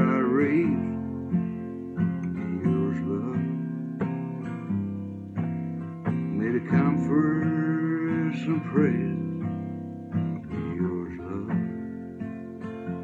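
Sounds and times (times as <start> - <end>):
man singing: 0.0 - 1.0, 2.0 - 3.8, 6.0 - 9.5, 10.4 - 11.8
acoustic guitar strummed chords: 0.0 - 13.0.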